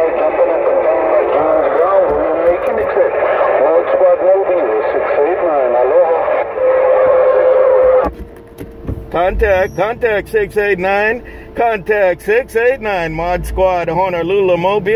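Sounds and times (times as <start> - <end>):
garbled voice over radio: 0.0 - 8.0
steady radio tone: 0.0 - 8.1, 9.1 - 11.7.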